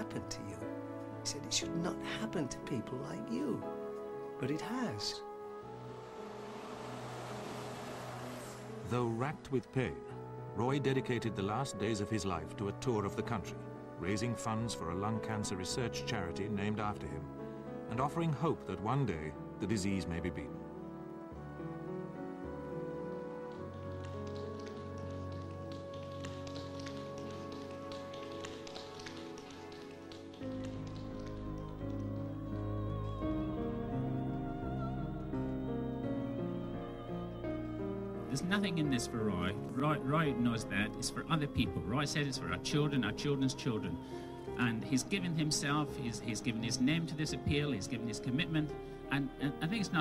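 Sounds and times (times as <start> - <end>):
music with held notes: 0.0 - 50.0
hiss: 6.0 - 8.8
tap shoes clicking: 23.3 - 32.2.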